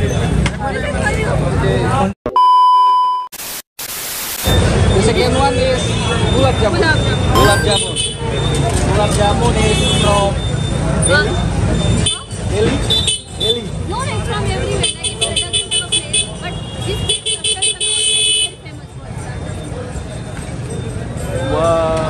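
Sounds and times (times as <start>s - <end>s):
people talking on street: 0.0s - 2.2s, 4.5s - 22.0s
vehicle horn beeping rapidly: 7.4s - 8.2s.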